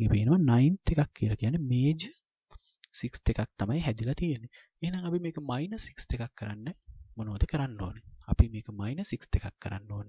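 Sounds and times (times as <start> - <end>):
person speaking: 2.8 - 10.0.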